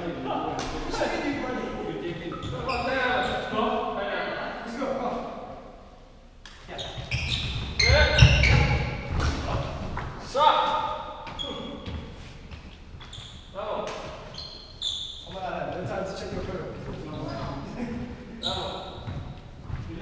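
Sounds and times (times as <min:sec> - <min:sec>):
players' voices echoing: 0:00.0 - 0:12.5, 0:13.5 - 0:20.0
footsteps on wooden court: 0:18.4 - 0:20.0.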